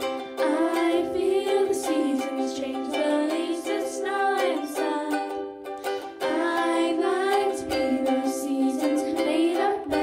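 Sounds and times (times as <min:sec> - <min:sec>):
ukulele: 0:00.0 - 0:10.0
girls singing into microphones: 0:00.3 - 0:10.0.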